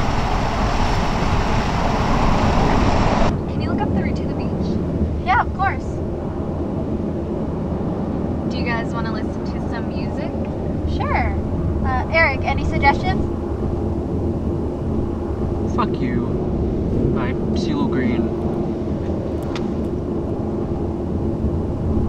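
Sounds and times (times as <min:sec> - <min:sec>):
car cabin road and engine noise: 0:00.0 - 0:22.0.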